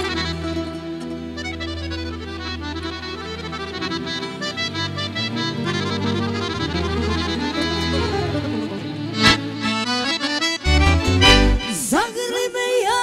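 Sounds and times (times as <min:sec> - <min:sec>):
bass line: 0:00.0 - 0:11.8
button accordion folk tune: 0:00.0 - 0:12.0.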